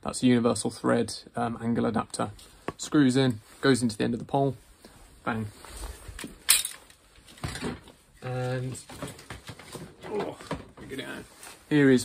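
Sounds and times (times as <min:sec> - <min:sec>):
tools rustling and knocking: 0:06.1 - 0:11.1
metal tools clattering: 0:06.2 - 0:07.9.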